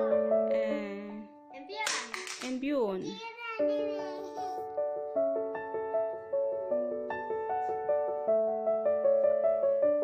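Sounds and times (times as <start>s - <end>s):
background music: 0.0s - 10.0s
hand clapping: 1.8s - 2.6s.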